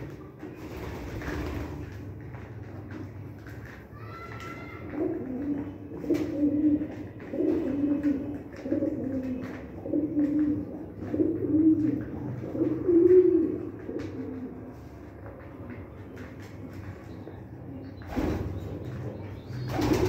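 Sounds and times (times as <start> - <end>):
pigeons cooing: 4.8 - 14.8.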